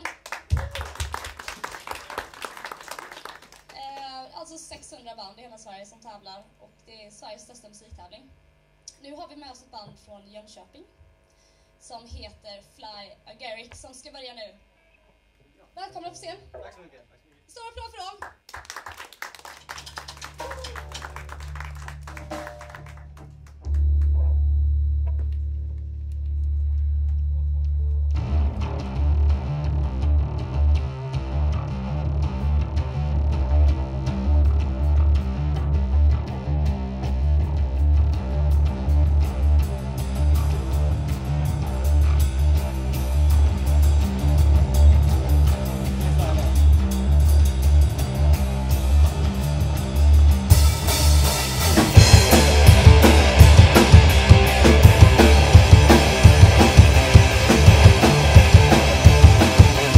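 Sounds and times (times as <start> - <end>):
electric guitars and bass riff: 19.8 - 59.9
drum kit crashing: 38.0 - 59.9.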